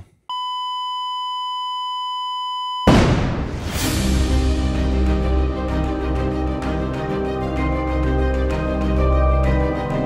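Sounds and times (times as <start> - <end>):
steady electronic beep tone: 0.3 - 2.9
intro music: 3.6 - 10.0.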